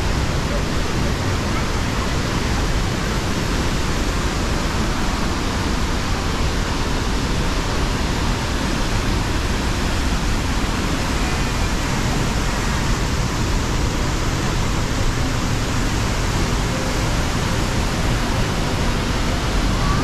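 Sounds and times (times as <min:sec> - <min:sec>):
fast-running river: 0:00.0 - 0:20.0
waterfall rushing: 0:00.0 - 0:20.0.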